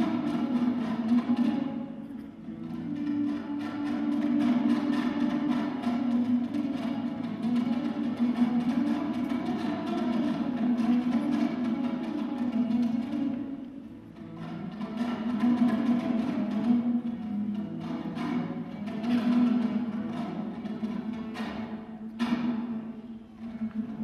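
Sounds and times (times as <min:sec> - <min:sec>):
lute strummed fast: 0:00.0 - 0:24.0.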